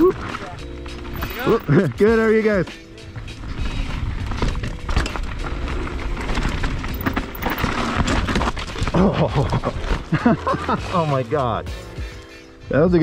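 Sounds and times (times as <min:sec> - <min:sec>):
bike frame rattling: 0:01.1 - 0:01.8, 0:03.4 - 0:10.2
bike tyres rolling over dirt: 0:03.1 - 0:11.6.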